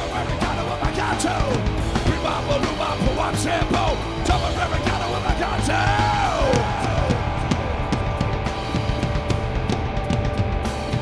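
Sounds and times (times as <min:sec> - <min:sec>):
drum kit steady beat: 0:00.0 - 0:11.0
held bass notes: 0:00.0 - 0:11.0.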